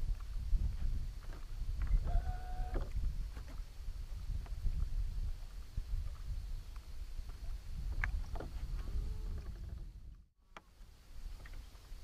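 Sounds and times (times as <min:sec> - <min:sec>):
wind rumble: 0:00.0 - 0:10.3.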